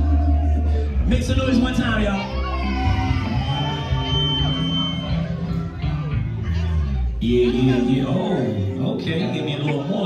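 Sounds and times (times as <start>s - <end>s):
electric bass low notes: 0.0s - 9.6s
live band music: 0.0s - 10.0s.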